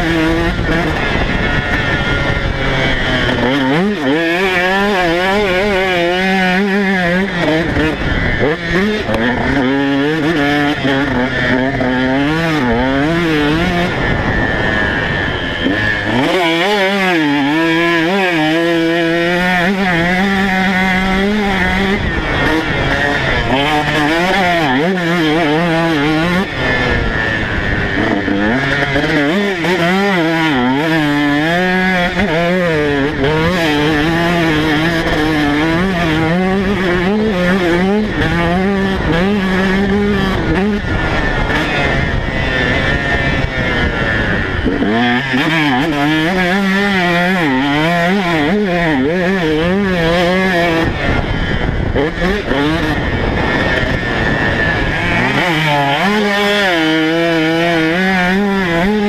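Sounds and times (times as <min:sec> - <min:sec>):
motocross engine revving: 0:00.0 - 0:59.0.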